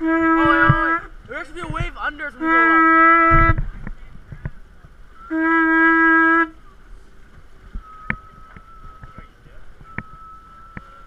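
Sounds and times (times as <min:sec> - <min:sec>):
water and wind noise: 0:00.0 - 0:11.0
faint steady high tone: 0:05.0 - 0:11.0.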